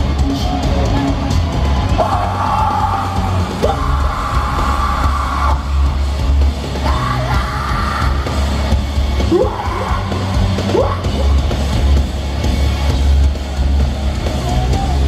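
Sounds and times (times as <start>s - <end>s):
heavy rock band playing: 0.0s - 15.0s
singer yelling: 1.9s - 5.8s, 6.7s - 8.4s, 9.2s - 11.5s.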